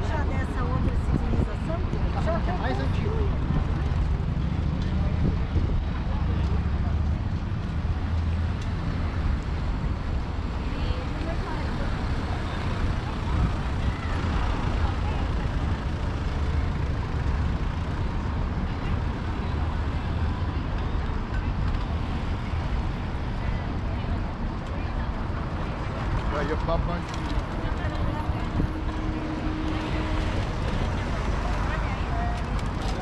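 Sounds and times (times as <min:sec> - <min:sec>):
chatter of passers-by: 0:00.0 - 0:33.0
road traffic rumble: 0:00.0 - 0:33.0.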